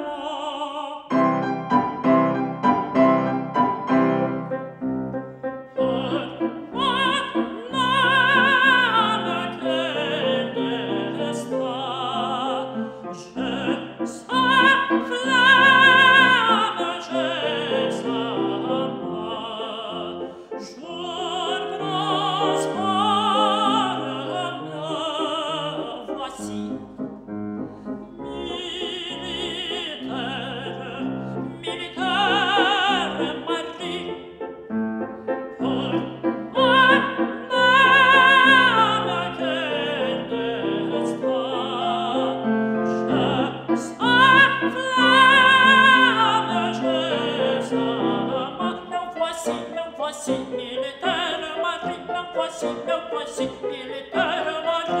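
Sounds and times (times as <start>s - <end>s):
man singing operatically: 0.0s - 1.4s, 5.7s - 26.9s, 28.3s - 34.5s, 35.5s - 55.0s
grand piano playing chords: 1.1s - 55.0s.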